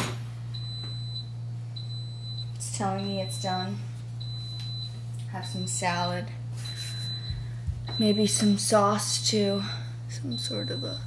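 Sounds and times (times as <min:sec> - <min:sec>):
steady low hum: 0:00.0 - 0:11.0
appliance high-pitched beeps: 0:00.5 - 0:11.0.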